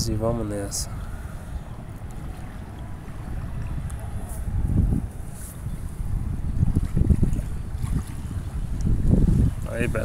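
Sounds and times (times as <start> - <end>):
water rushing and splashing: 0.0 - 5.4, 6.1 - 10.0
wind buffeting microphone: 0.0 - 10.0.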